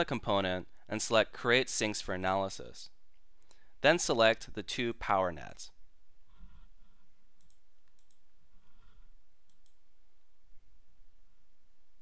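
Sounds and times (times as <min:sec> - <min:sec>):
faint steady low hum: 0:00.0 - 0:12.0
computer mouse clicks: 0:06.4 - 0:09.8.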